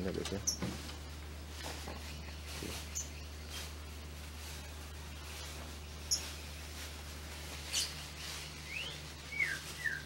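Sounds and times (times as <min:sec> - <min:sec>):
steady low hum: 0:00.0 - 0:10.0
bird chirps: 0:01.8 - 0:03.7, 0:05.9 - 0:06.6, 0:07.6 - 0:10.0
descending whistled bird notes: 0:08.6 - 0:10.0.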